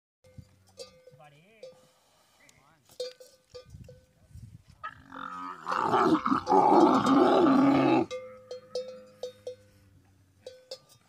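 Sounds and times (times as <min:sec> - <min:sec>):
metal bell clanking: 0:00.2 - 0:01.8, 0:03.0 - 0:04.1, 0:06.2 - 0:09.7, 0:10.4 - 0:11.0.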